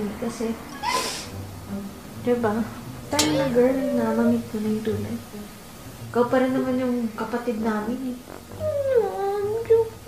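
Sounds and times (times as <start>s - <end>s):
high falling cry: 3.2s - 4.5s.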